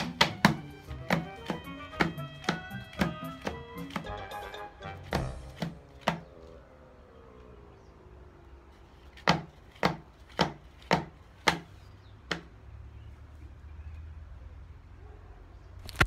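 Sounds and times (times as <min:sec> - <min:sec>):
plastic tub knocking on tabletop: 0:00.0 - 0:04.1, 0:05.0 - 0:06.3, 0:09.2 - 0:11.7.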